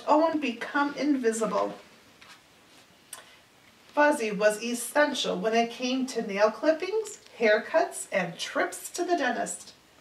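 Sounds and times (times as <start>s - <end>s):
book page turning: 2.2s - 2.9s.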